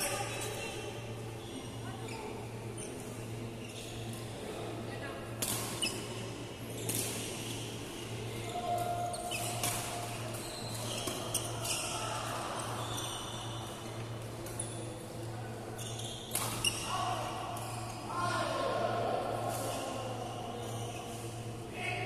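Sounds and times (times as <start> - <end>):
shoes squeaking on court: 8.4 - 12.0, 15.8 - 16.9.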